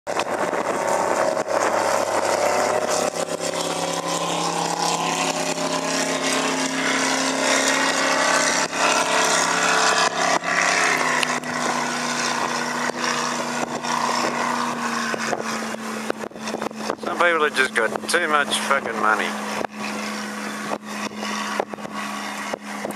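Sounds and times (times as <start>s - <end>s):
speedboat engine droning: 0.1s - 22.9s.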